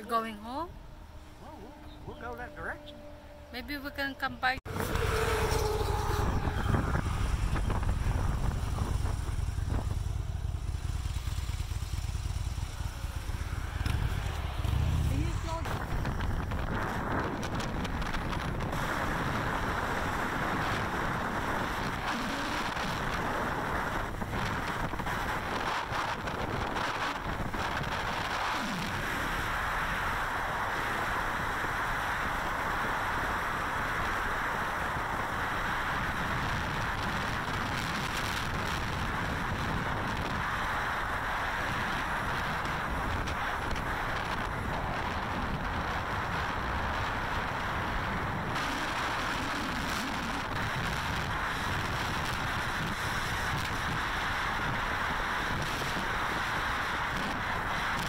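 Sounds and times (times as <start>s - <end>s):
wind and road noise: 0.0s - 58.0s
motorcycle engine running: 4.7s - 58.0s.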